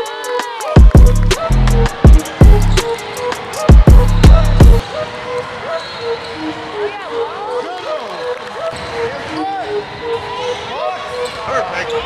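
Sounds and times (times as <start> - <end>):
sneakers squeaking: 2.0 - 6.9, 8.2 - 12.0.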